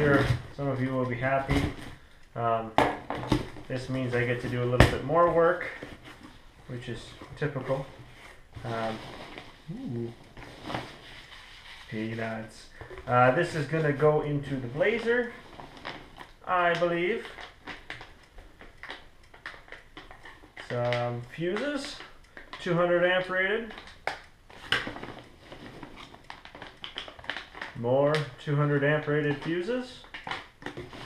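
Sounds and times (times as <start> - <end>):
man humming: 9.7 - 10.2.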